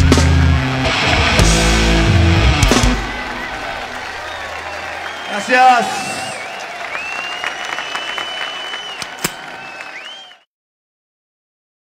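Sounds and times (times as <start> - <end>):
crowd applauding: 0.2 - 10.5.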